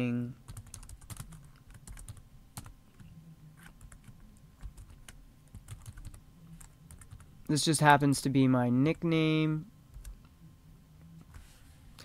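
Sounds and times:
keyboard typing: 0.5s - 7.3s.

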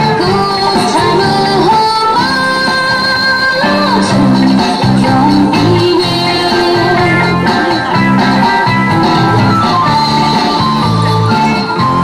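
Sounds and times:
dance music with singing voice: 0.0s - 12.0s.

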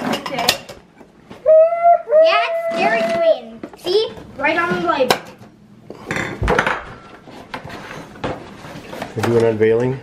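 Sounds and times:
dishes clattering: 0.0s - 0.8s, 4.7s - 9.4s
dishes clinking: 0.0s - 0.8s, 5.1s - 7.1s.

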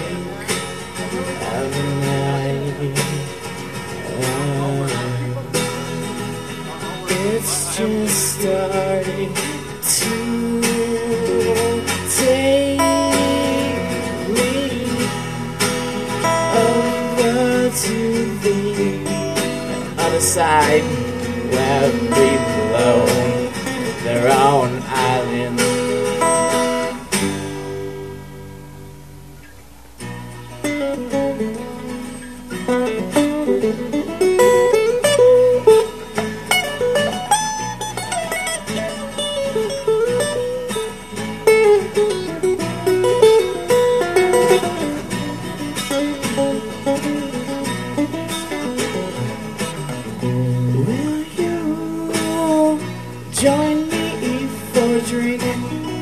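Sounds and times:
lead acoustic guitar melody: 0.0s - 56.0s
strummed rhythm guitar: 0.0s - 56.0s.

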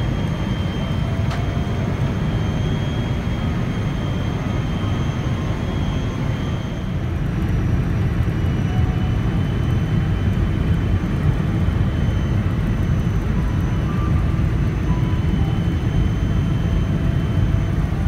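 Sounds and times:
engines rumbling: 0.0s - 18.0s
faint high whine: 0.0s - 18.0s.

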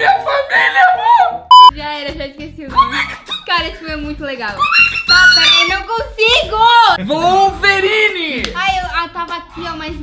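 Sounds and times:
excited voices: 4.5s - 8.8s.

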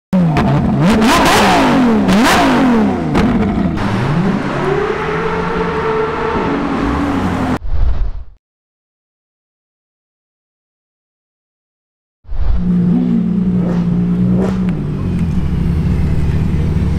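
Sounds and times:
sports car engine revving: 0.2s - 7.6s, 12.6s - 16.9s.

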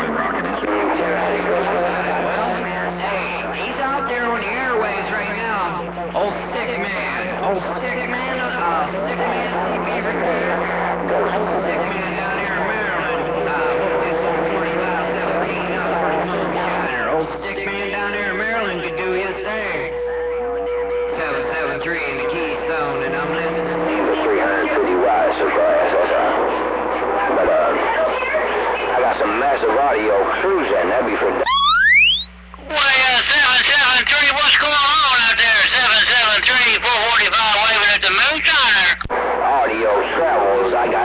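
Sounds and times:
jumbled radio voices: 0.0s - 41.0s
heterodyne whistles: 31.4s - 32.4s.

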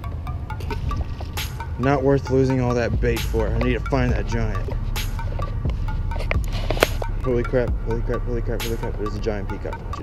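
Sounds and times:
music with bass beat: 0.0s - 10.0s.

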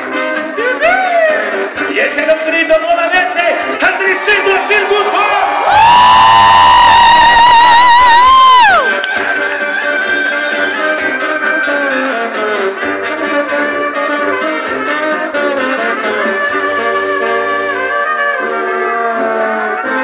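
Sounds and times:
brass band playing: 0.0s - 5.8s, 7.1s - 20.0s
high brass note with vibrato: 10.8s - 20.0s.

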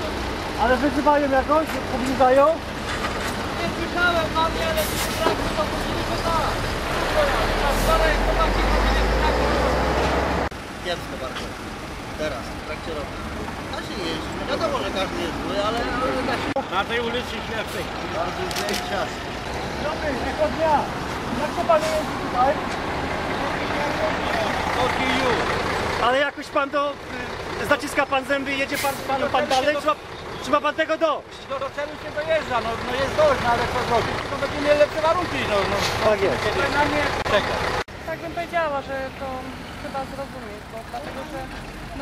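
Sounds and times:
diesel engine rumbling: 0.0s - 42.0s.

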